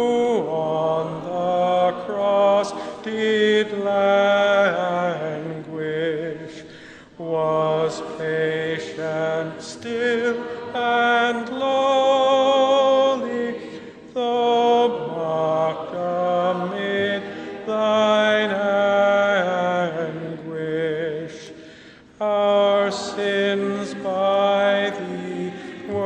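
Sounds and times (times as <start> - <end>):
congregation singing a hymn: 0.0 - 26.0.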